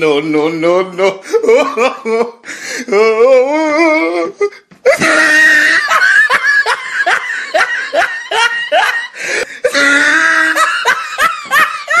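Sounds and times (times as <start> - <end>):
person laughing hard: 1.2 - 12.0.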